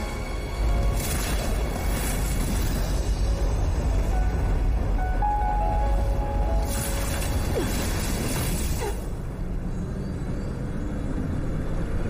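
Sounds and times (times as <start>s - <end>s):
deep rumble: 0.4s - 12.0s
held music notes: 3.3s - 7.5s.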